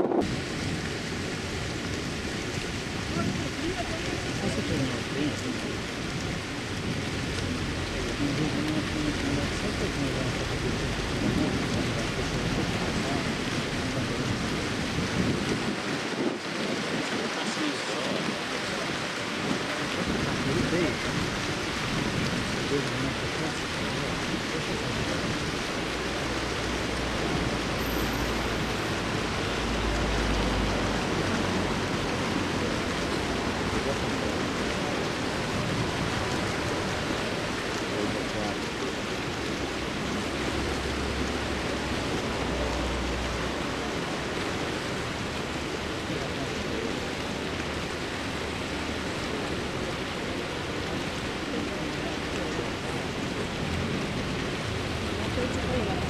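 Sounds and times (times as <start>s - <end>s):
wind on microphone: 0.0s - 4.9s, 10.4s - 27.6s
low rumbling gusts: 0.0s - 56.0s.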